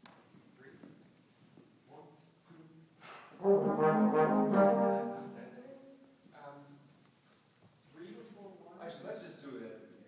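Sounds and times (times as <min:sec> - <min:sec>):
brass ensemble playing chords: 0:03.4 - 0:05.6.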